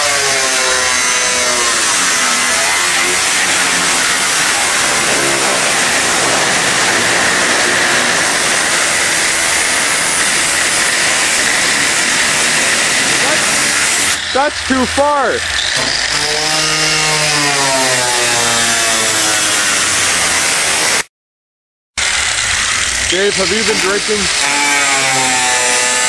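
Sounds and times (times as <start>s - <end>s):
angle grinder cutting metal: 0.0s - 21.1s, 22.0s - 26.0s.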